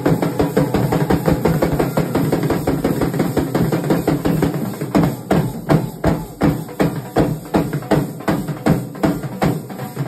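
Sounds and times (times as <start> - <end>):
barrel drums beaten fast: 0.0 - 10.0.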